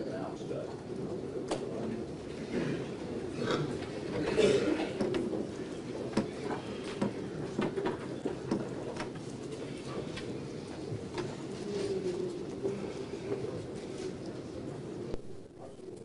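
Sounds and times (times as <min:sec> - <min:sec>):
steady background hum: 0:00.0 - 0:16.0
footsteps: 0:00.6 - 0:15.5.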